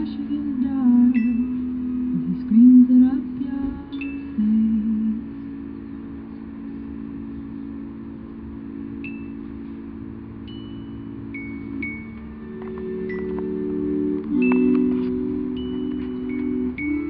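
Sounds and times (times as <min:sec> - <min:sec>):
accordion sustained chord: 0:00.0 - 0:17.0
high bell-like notes: 0:00.9 - 0:02.7, 0:03.9 - 0:17.0.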